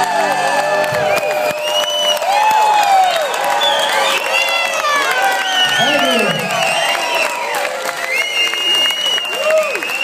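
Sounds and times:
audience applauding and cheering: 0.0 - 10.0
shouts and whoops: 0.0 - 10.0
long high whistle: 1.1 - 2.6, 8.0 - 10.0.

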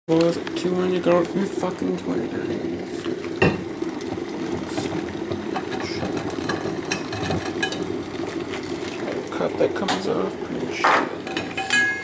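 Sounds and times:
low mechanical hum: 0.1 - 12.0.

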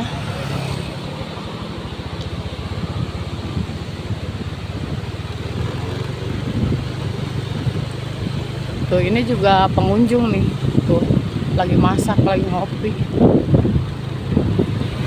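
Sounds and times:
road noise: 0.0 - 15.0
vehicle engine running steadily: 0.0 - 15.0.

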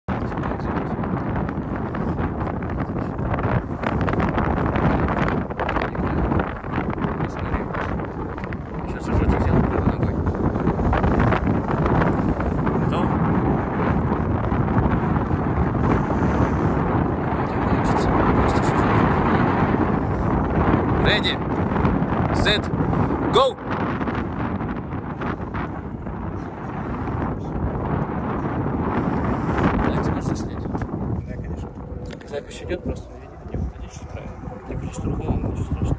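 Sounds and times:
wind on microphone: 0.0 - 35.9.

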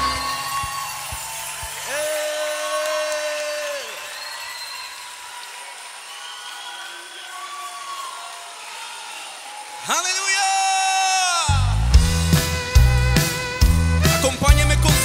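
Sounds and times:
voices calling out in hall: 0.0 - 15.0.

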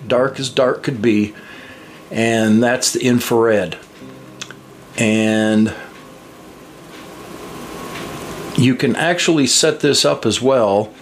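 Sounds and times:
faint thin whine: 0.0 - 11.0.

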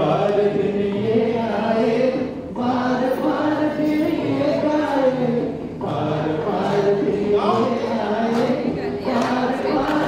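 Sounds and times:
group singing: 0.0 - 10.0.

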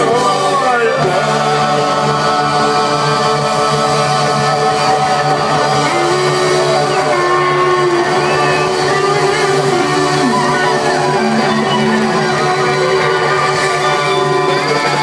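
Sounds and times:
live rock band playing: 4.4 - 15.0.

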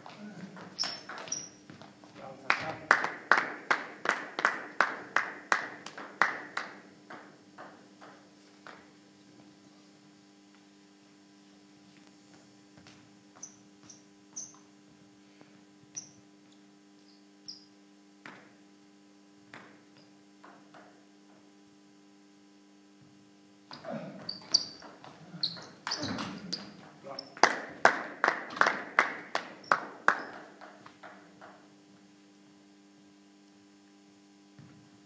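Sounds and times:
shoes squeaking on wooden floor: 0.0 - 2.3, 12.3 - 14.7, 23.7 - 27.4
steady low hum: 0.0 - 35.0
table tennis ball bouncing: 0.6 - 1.8, 5.1 - 8.9, 18.2 - 18.6, 19.5 - 21.0, 23.7 - 31.7.

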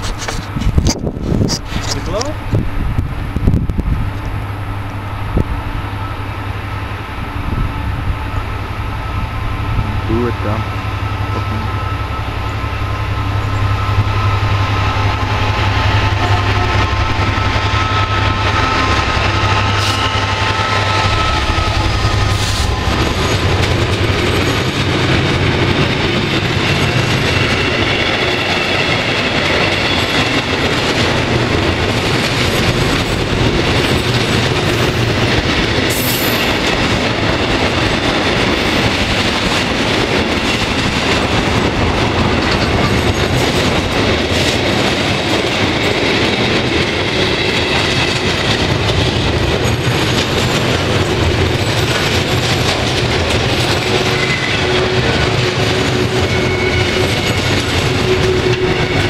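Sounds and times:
diesel locomotive engine hum: 0.0 - 59.0
train wheels on rails: 0.0 - 59.0.

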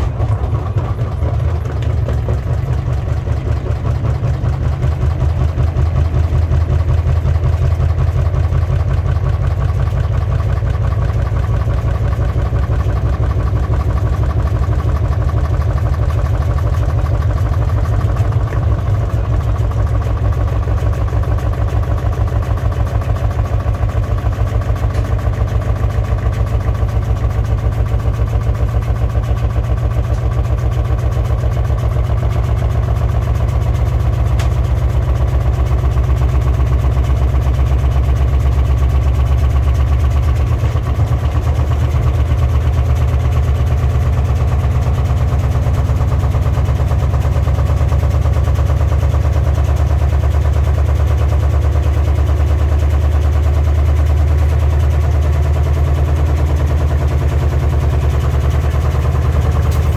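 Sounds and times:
washing machine rumbling: 0.0 - 59.9.

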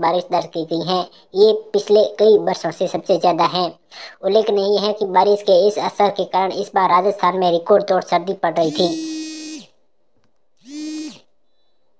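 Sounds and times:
woman holding a vowel: 8.6 - 9.7
steady humming vowel: 8.7 - 9.7, 10.6 - 11.2.

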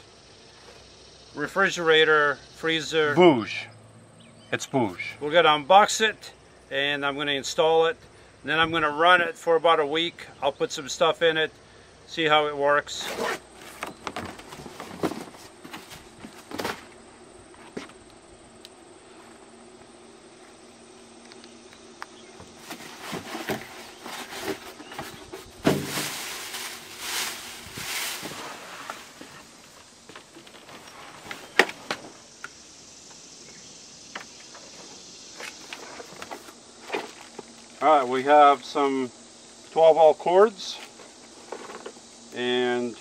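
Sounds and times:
cardboard flaps handled: 13.0 - 17.0, 22.4 - 29.6
knocks and scrapes: 13.0 - 17.0, 22.4 - 32.2
styrofoam packing handled: 13.0 - 17.0, 22.4 - 32.0
plastic wrap rustling: 22.6 - 29.7.

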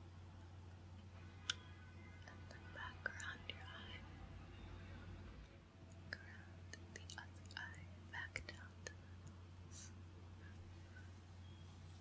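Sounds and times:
person whispering: 2.3 - 4.1, 6.1 - 9.1.

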